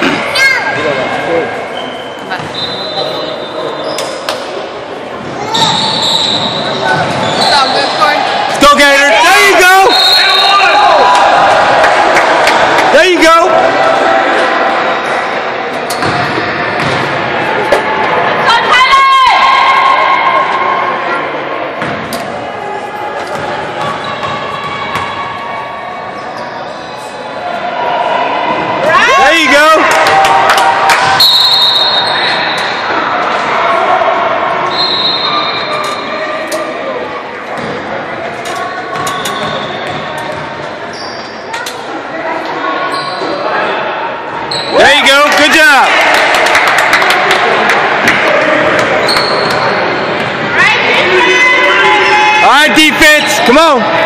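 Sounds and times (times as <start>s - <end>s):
echoing crowd chatter: 0.0s - 54.0s
shoe squeaks: 1.7s - 4.3s, 5.4s - 8.1s, 26.2s - 27.2s, 38.6s - 41.8s, 42.8s - 43.4s, 44.5s - 44.8s, 49.0s - 50.2s.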